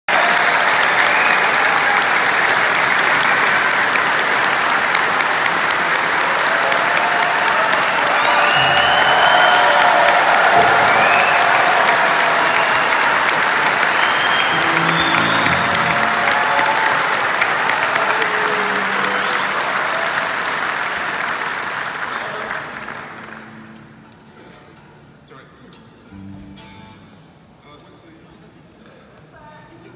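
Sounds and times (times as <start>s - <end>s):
audience applauding and cheering: 0.1s - 24.1s
whistles and shouts: 8.1s - 10.0s, 10.6s - 11.6s, 13.8s - 15.9s.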